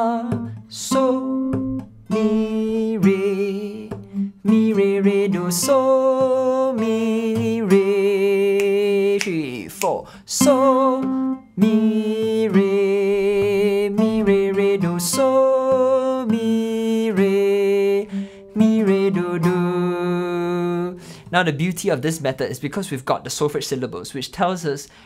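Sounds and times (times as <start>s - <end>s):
acoustic guitar picking: 0.0s - 22.3s
man singing: 0.0s - 24.9s.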